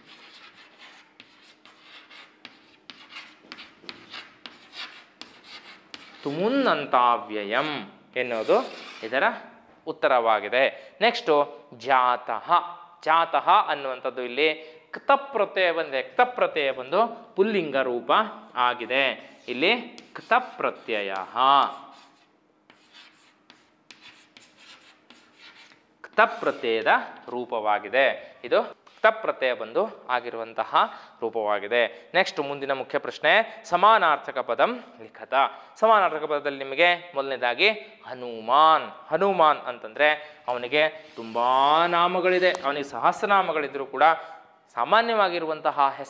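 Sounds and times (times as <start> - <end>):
chalk tapping: 0.0 - 6.4, 19.3 - 26.9
chalk scraping on chalkboard: 0.0 - 6.5, 8.3 - 9.2, 19.2 - 26.9, 40.9 - 42.7.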